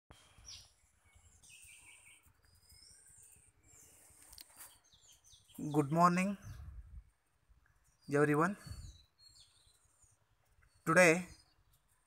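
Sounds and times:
faint bird chirps: 0:00.1 - 0:12.0.

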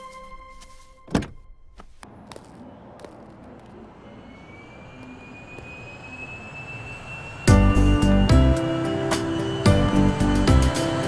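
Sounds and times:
car door shutting: 0:01.1 - 0:01.9
thin high whine: 0:03.8 - 0:11.0.

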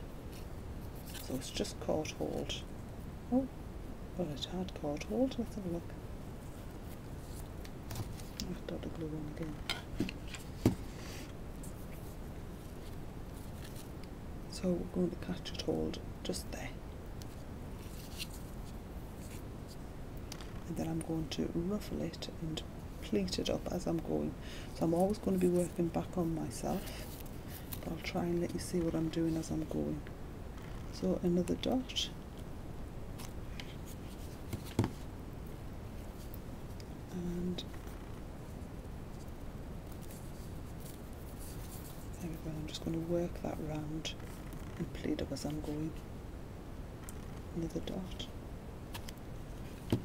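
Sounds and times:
low background noise: 0:00.0 - 0:50.0
steady low hum: 0:00.0 - 0:50.0
ribbon rustling and crinkling: 0:00.3 - 0:01.5, 0:11.6 - 0:14.1, 0:17.3 - 0:19.8, 0:38.5 - 0:43.4
ribbon rustling and scratching: 0:00.3 - 0:01.6, 0:06.2 - 0:14.1, 0:17.2 - 0:19.9, 0:24.8 - 0:29.8, 0:33.1 - 0:35.1, 0:37.8 - 0:44.9.

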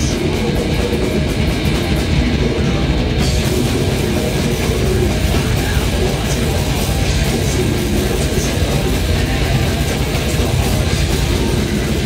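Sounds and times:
dense drumming: 0:00.0 - 0:12.0
distorted electric guitars: 0:00.0 - 0:12.0.

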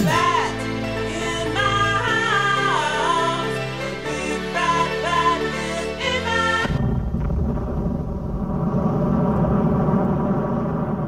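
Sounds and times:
music: 0:00.0 - 0:07.0
low dense rumbling: 0:06.6 - 0:11.0.

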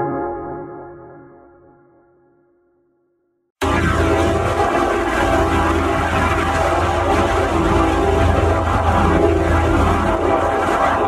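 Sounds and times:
deep rumble: 0:03.6 - 0:11.0
distorted dense roar: 0:03.6 - 0:11.0.

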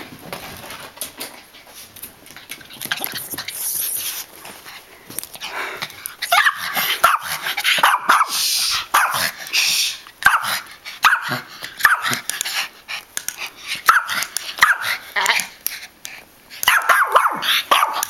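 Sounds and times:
dog barking and yipping: 0:06.2 - 0:09.3, 0:10.2 - 0:12.2, 0:13.8 - 0:15.0, 0:16.6 - 0:18.0.

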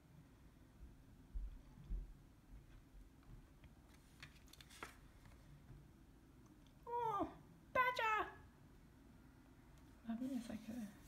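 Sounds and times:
cards rustling and clicking: 0:03.8 - 0:05.5.

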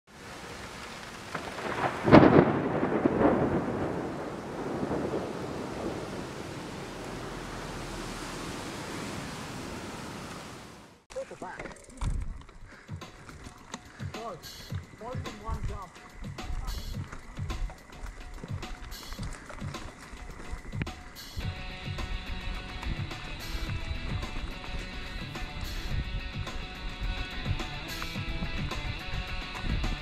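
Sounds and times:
rain hissing: 0:00.1 - 0:11.1, 0:11.8 - 0:30.0
mountain bike trail noise: 0:00.1 - 0:30.0
thunderclap rumbling: 0:01.2 - 0:10.8
person speaking: 0:11.1 - 0:12.2, 0:14.0 - 0:17.1.

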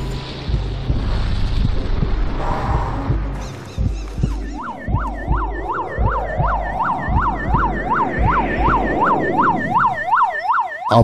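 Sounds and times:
low rumble: 0:00.0 - 0:10.4
ambulance siren yelping: 0:03.8 - 0:11.0.

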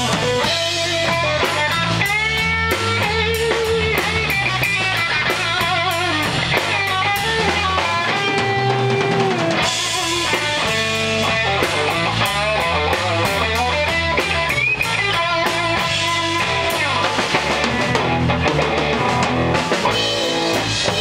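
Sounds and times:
bass guitar: 0:00.0 - 0:21.0
drum kit steady beat: 0:00.0 - 0:21.0
electric guitar lead lines: 0:00.0 - 0:21.0.

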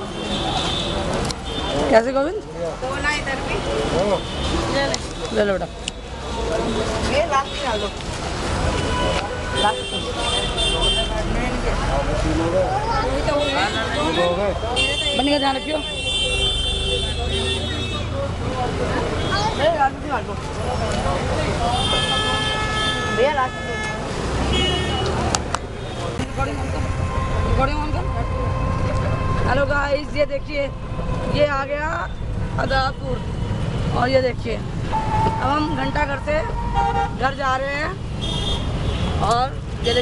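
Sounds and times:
low traffic rumble: 0:00.0 - 0:40.0
voices talking: 0:00.0 - 0:40.0
vehicle horn honking: 0:21.7 - 0:25.2, 0:34.9 - 0:37.3, 0:38.2 - 0:39.2.

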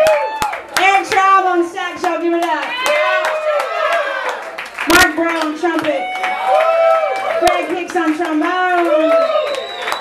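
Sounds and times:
audience clapping: 0:00.0 - 0:10.0.

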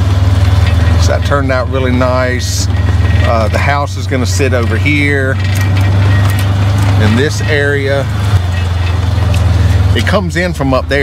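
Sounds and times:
vehicle engine droning: 0:00.0 - 0:11.0.

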